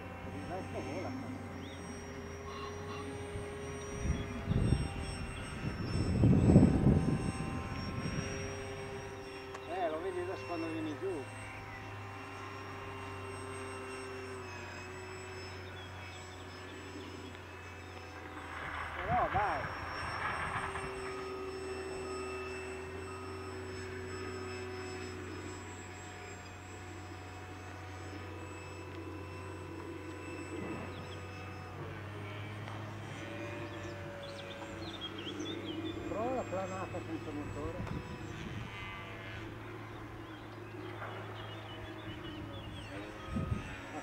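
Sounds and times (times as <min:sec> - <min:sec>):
model plane motor whine: 0:00.0 - 0:44.0.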